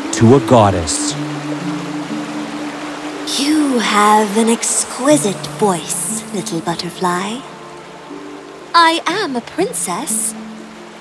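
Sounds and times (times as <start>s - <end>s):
background music held low notes: 0.0s - 11.0s
rushing water hiss: 0.0s - 11.0s.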